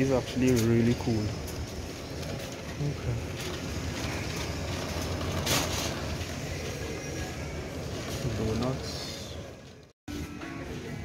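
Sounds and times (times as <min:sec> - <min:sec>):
shopping trolley rolling and rattling: 0:00.0 - 0:09.9.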